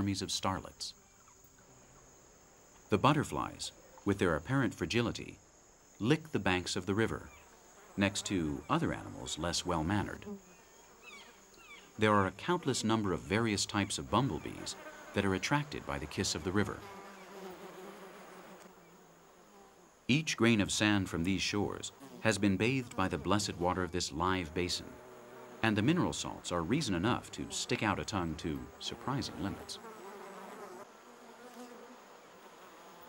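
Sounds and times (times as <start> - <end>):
bee buzzing: 7.0 - 33.0.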